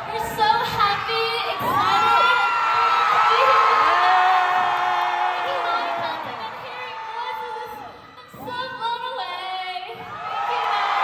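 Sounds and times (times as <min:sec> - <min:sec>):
crowd screaming and cheering: 0:00.0 - 0:11.0.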